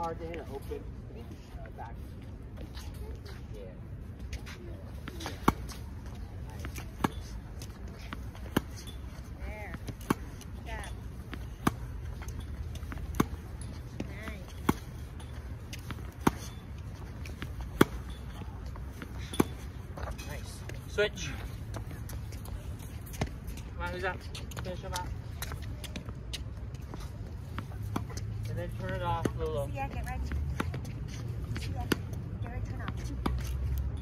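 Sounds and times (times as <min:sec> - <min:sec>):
racket hitting tennis balls: 0:04.4 - 0:23.6.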